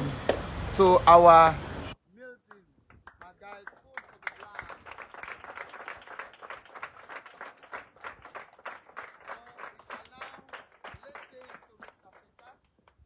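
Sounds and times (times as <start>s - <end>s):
children clapping in rhythm: 2.5s - 13.0s.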